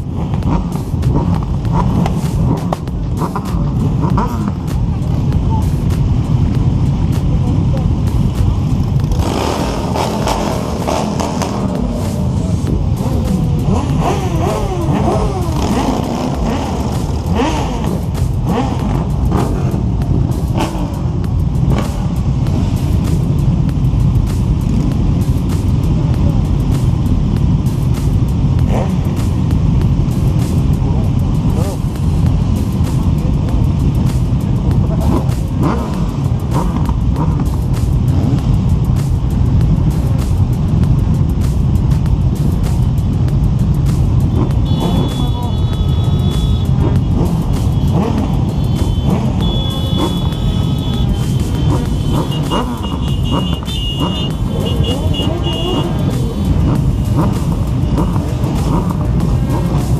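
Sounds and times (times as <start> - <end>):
motorcycle engines rumbling: 0.0 - 59.9.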